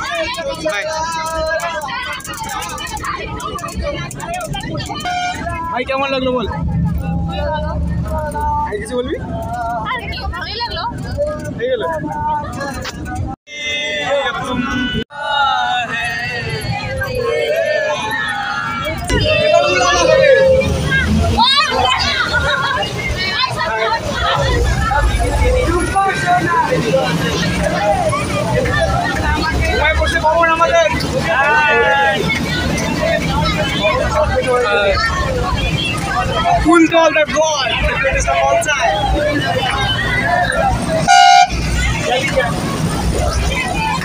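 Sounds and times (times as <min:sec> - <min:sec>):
bus engine rumble: 0:00.0 - 0:44.0
passengers chattering: 0:00.0 - 0:44.0
road noise: 0:00.0 - 0:44.0
loud vehicle horn toot: 0:04.9 - 0:05.6, 0:41.0 - 0:41.9.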